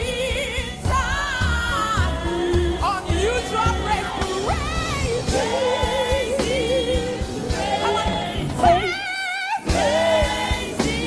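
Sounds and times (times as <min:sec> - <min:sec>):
band accompaniment: 0:00.0 - 0:11.0
gospel singing with vibrato: 0:00.0 - 0:11.0.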